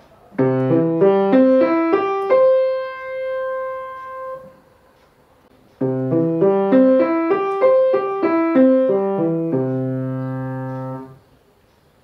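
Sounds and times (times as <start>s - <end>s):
grand piano playing single notes: 0.4s - 4.6s, 5.8s - 11.2s.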